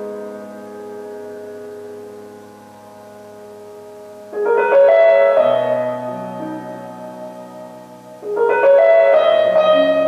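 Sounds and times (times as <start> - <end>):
held piano chord: 0.0 - 10.0.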